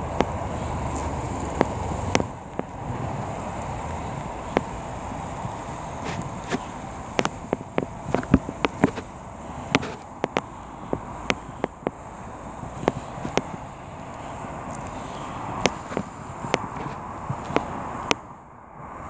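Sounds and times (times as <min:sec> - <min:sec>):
low outdoor background rumble: 0:00.0 - 0:19.0
sharp clicks and taps: 0:05.4 - 0:09.1, 0:09.7 - 0:12.0, 0:12.6 - 0:13.6.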